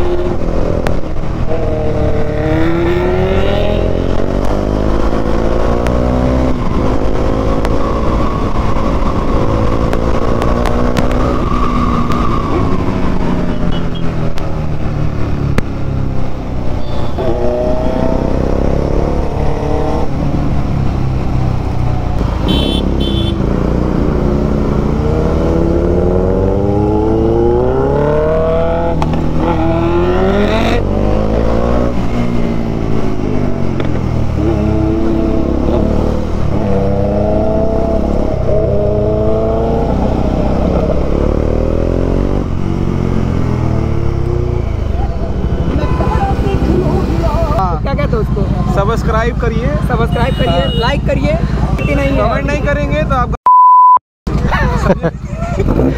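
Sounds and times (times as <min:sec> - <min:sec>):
motorcycle engine revving: 0:00.0 - 0:53.3, 0:54.3 - 0:55.9.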